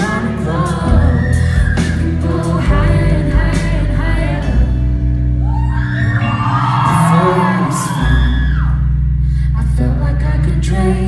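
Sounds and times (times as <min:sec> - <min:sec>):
voices singing over keyboards: 0:00.0 - 0:04.7
heavy low bass: 0:00.0 - 0:11.0
live synth-pop through pa: 0:00.0 - 0:11.0.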